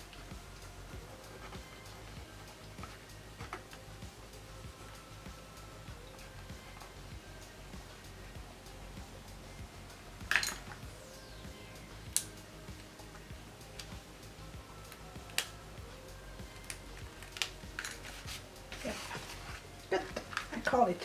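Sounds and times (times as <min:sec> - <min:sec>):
paper rustling: 0:17.9 - 0:20.5.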